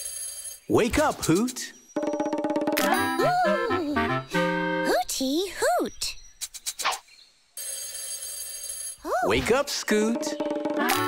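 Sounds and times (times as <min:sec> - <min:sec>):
alarm clock bell ringing: 0:00.0 - 0:00.7, 0:07.6 - 0:09.0.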